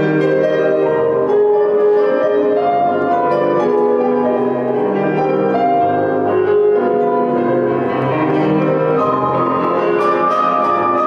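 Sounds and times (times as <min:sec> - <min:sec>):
classical piano music: 0:00.0 - 0:11.0.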